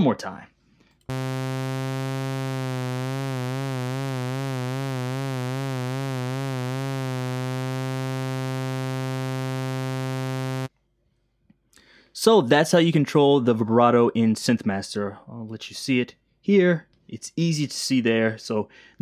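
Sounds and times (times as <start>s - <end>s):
synthesizer low note with vibrato: 1.1s - 10.7s.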